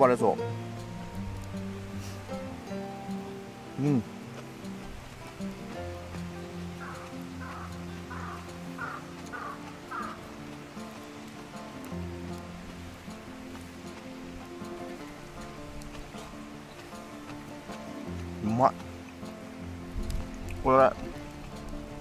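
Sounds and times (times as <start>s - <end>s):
background music with held notes: 0.0s - 22.0s.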